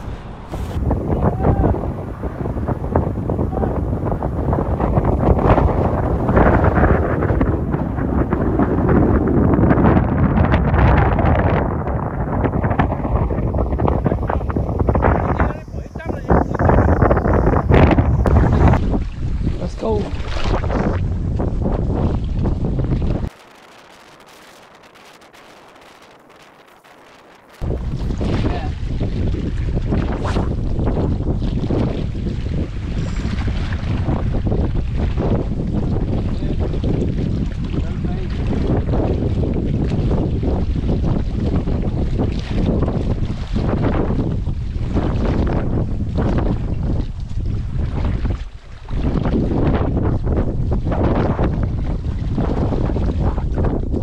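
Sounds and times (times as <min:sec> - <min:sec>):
strong wind buffeting microphone: 0:00.0 - 0:54.0.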